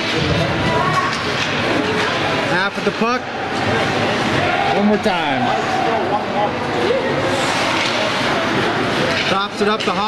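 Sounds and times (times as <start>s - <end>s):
ice hockey rink noise: 0.0s - 10.0s.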